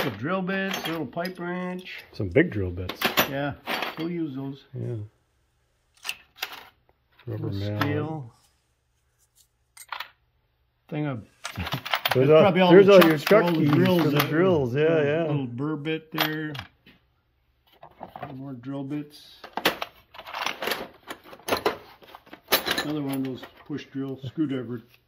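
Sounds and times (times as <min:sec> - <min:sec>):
metal hand tools clinking in drawer: 0:22.4 - 0:23.6.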